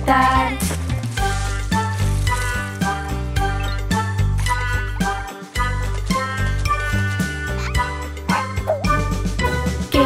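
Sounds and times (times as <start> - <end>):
children's song with bass line: 0.0 - 10.0.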